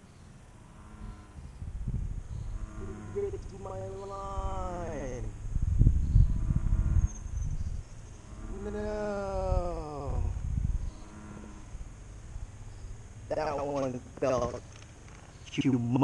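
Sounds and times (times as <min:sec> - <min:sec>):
wind rumbling on microphone: 0:00.0 - 0:16.0
man groaning: 0:08.5 - 0:10.4.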